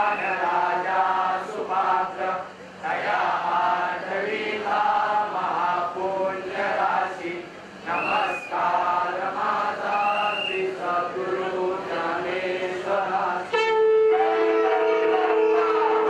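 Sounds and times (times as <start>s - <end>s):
group chanting a hymn: 0.0s - 16.0s
brief high tones: 13.5s - 16.0s.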